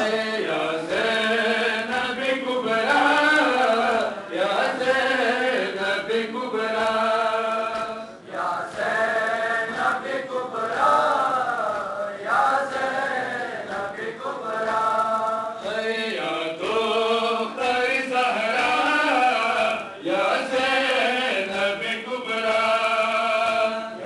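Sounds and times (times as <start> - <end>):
men chanting over loudspeaker: 0.0 - 24.0.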